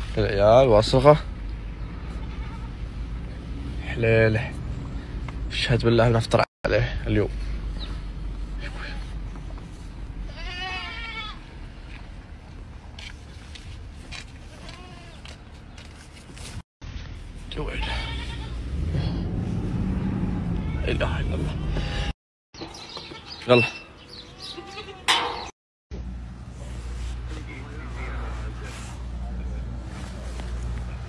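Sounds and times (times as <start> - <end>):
young goat bleating: 2.0 - 2.8, 8.6 - 9.1, 10.3 - 11.5, 14.5 - 15.3, 17.8 - 18.6, 24.2 - 25.2
sheep bleating: 10.3 - 11.4, 17.8 - 18.6.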